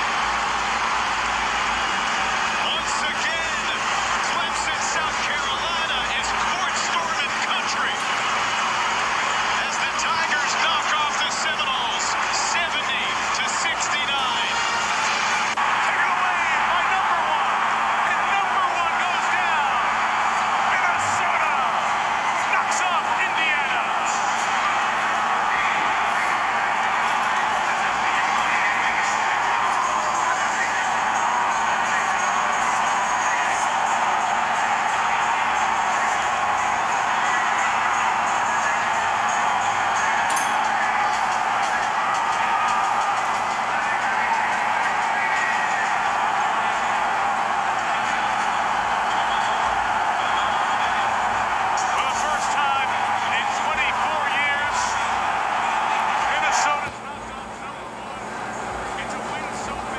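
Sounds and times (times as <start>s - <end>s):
music playing: 0.0s - 57.4s
arena crowd cheering: 0.0s - 59.9s.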